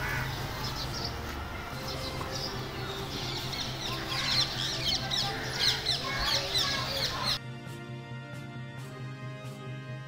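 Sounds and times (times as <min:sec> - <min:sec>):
birds chirping: 0:00.0 - 0:07.4.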